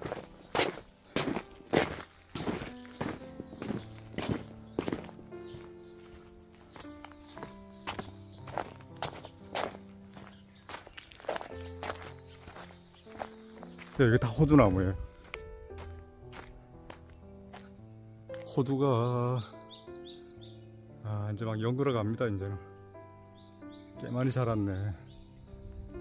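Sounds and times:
footsteps on plastic sheeting: 0:00.0 - 0:18.6
soft background music: 0:00.0 - 0:26.0.

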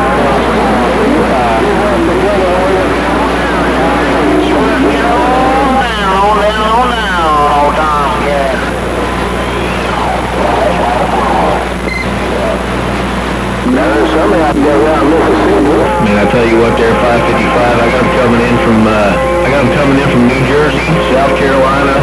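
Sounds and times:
garbled voices over cb radio: 0:00.0 - 0:22.0
radio hum and static: 0:00.0 - 0:22.0.

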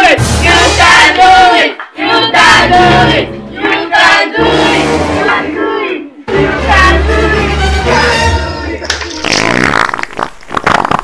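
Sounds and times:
comic fart sound: 0:09.0 - 0:11.0.

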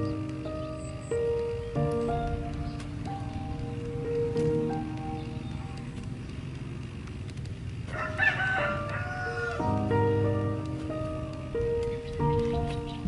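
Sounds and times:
soft background music: 0:00.0 - 0:13.0
rooster crowing: 0:07.9 - 0:09.8.

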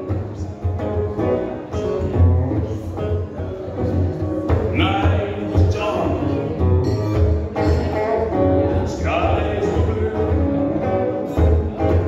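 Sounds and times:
electric guitar through amplifier: 0:00.0 - 0:12.0.

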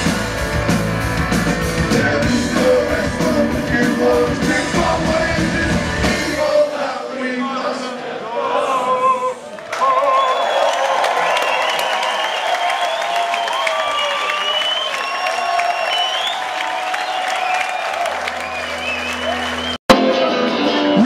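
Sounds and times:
crowd cheering and applauding: 0:09.4 - 0:20.7
high whistles: 0:10.1 - 0:19.8.

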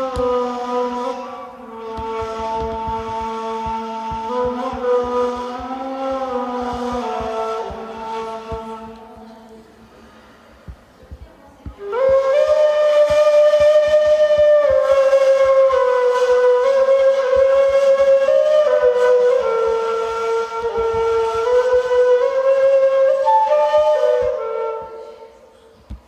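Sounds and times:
breathy cane flute melody: 0:00.0 - 0:10.6, 0:11.7 - 0:25.9.

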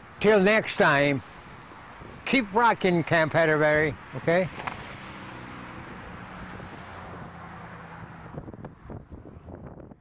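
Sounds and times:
vehicle passing on road: 0:00.0 - 0:10.0.

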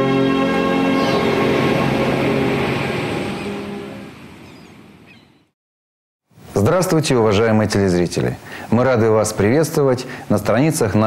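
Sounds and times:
loud rushing noise: 0:00.0 - 0:04.4
title sequence music: 0:00.0 - 0:04.4.

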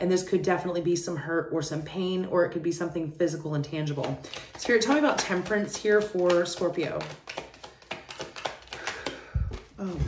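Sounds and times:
cards being shuffled: 0:03.9 - 0:10.0.

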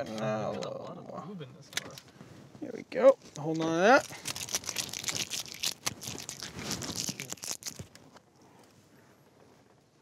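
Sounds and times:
tape pulled off and torn: 0:04.0 - 0:08.1.

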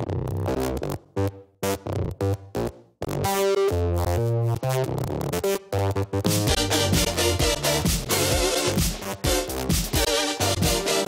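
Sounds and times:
choppy synthesizer stabs: 0:00.0 - 0:11.0
steady synth chord with bass: 0:00.5 - 0:11.0.

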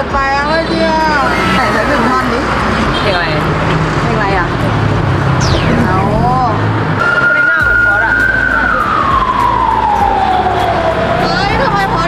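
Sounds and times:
siren wailing: 0:05.4 - 0:12.0.

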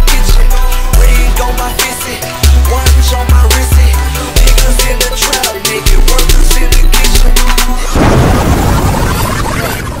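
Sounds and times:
hip hop beat: 0:00.0 - 0:08.0
loud explosion-like boom: 0:07.9 - 0:09.8.

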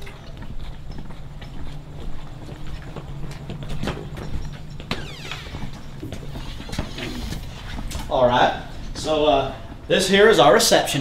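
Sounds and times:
footsteps on concrete: 0:00.0 - 0:11.0
door pulled open scraping: 0:04.9 - 0:08.1.

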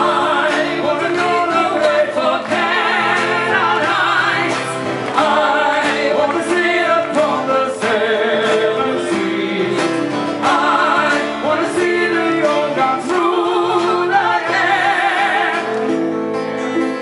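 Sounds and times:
woman and man singing together: 0:00.0 - 0:15.8
strummed acoustic guitars: 0:00.0 - 0:17.0.

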